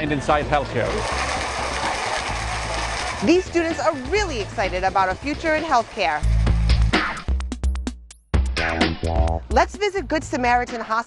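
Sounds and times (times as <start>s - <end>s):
audience crowd noise: 0.0s - 5.9s
background music: 0.0s - 11.0s.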